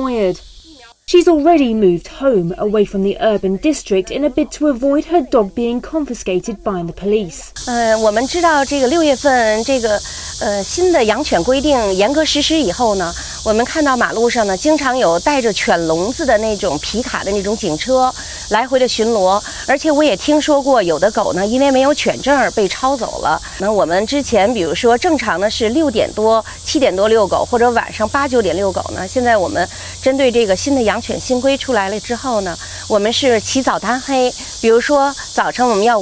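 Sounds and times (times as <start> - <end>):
steady hiss: 0.0 - 2.5, 7.5 - 36.0
woman speaking: 0.0 - 36.0.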